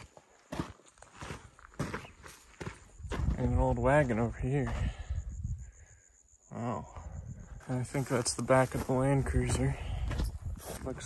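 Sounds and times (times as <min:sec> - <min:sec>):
footsteps on sandy dirt: 0:00.0 - 0:05.2, 0:06.9 - 0:11.0.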